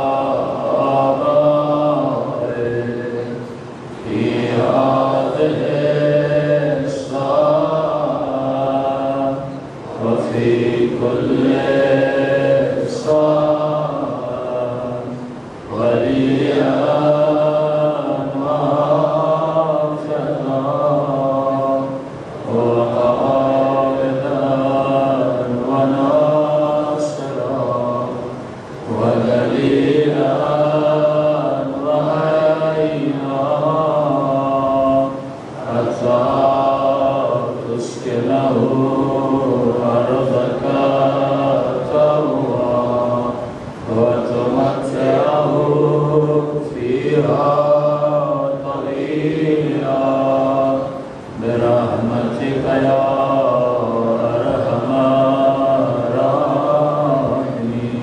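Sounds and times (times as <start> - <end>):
man chanting through pa: 0.0 - 58.0.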